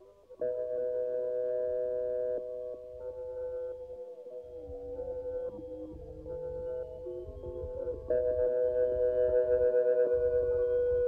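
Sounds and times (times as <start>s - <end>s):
electronic chord of pure tones: 0.0s - 11.0s.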